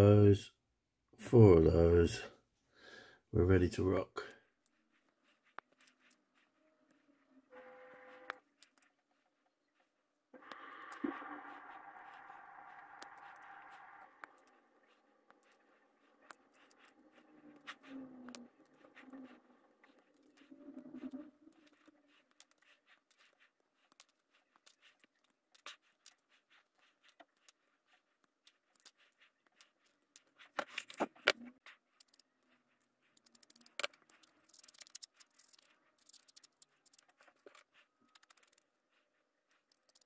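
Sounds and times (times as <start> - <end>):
faint hum: 10.3 - 21.9.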